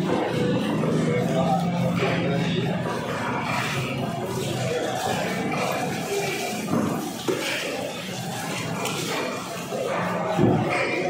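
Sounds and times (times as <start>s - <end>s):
market crowd voices: 0.0s - 11.0s.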